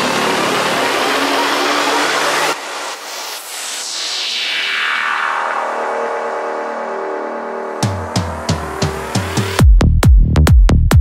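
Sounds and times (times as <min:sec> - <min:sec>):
hissing synthesizer noise sweep: 0:00.0 - 0:09.5.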